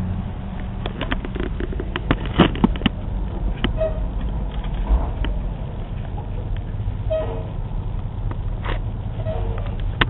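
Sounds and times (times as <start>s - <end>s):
idling vehicles rumble: 0.0s - 10.0s.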